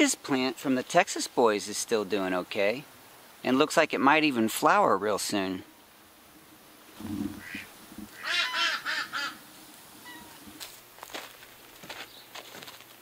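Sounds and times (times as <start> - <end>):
bird calling harsh notes: 7.0 - 9.4, 10.0 - 10.5.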